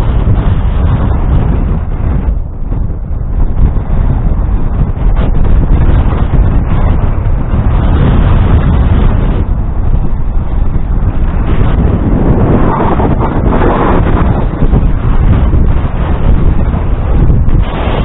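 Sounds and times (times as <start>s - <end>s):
wind rumble on microphone: 0.0s - 18.0s.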